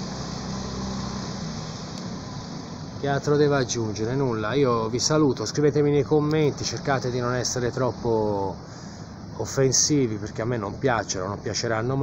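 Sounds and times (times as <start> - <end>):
motor scooter passing: 0.0 - 3.6
city street traffic: 0.0 - 12.0.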